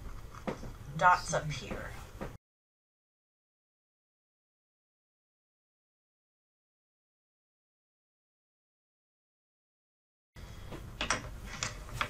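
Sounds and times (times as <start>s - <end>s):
low room hum: 0.0s - 2.4s.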